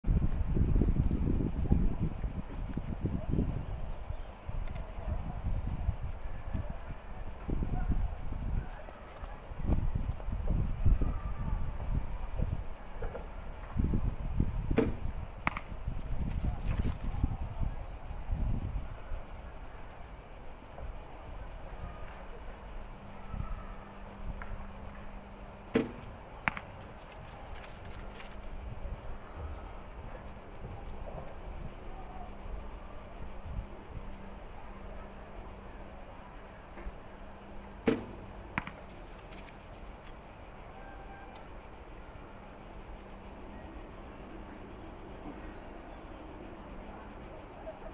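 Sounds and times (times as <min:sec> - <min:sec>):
arrow striking target: 0:14.7 - 0:15.8, 0:25.7 - 0:26.9, 0:37.8 - 0:38.9
bowstring snapping: 0:14.8 - 0:15.7, 0:25.8 - 0:26.8.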